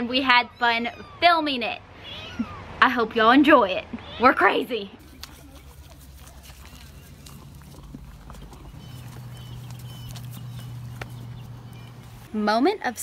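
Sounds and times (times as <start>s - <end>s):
horse chewing with crunches: 5.0s - 13.0s
steady low hum: 5.0s - 13.0s.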